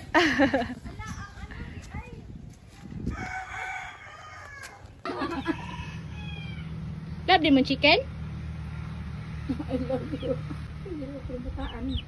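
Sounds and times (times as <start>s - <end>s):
rooster crowing: 3.1s - 6.9s.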